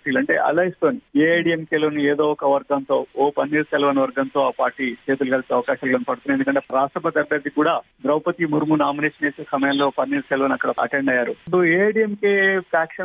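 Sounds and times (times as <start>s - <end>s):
person talking: 0.0s - 13.0s.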